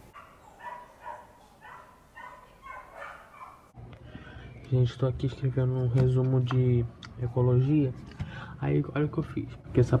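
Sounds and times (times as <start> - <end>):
distant dogs barking: 0.0 - 3.8.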